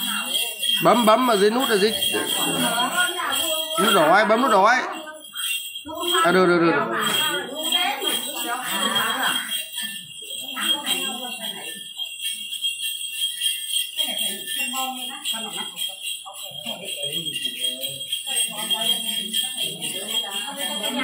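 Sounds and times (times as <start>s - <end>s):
jingle bells shaken: 0.0s - 21.0s
voices: 0.0s - 21.0s.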